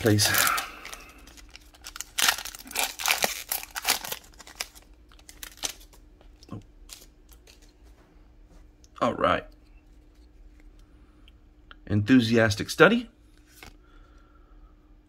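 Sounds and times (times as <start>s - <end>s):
foil wrapper crinkling: 0.0s - 7.8s
cards rustling: 0.0s - 7.9s, 13.3s - 13.8s.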